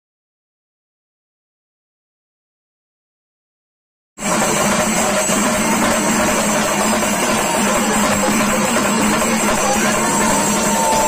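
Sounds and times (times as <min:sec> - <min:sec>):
loud music with drums: 0:04.2 - 0:11.0.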